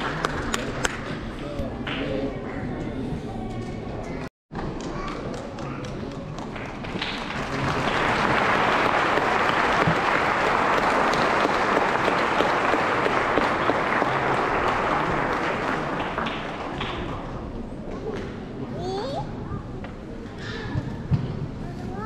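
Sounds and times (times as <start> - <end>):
crowd clapping: 0.0 - 1.2, 4.7 - 17.4.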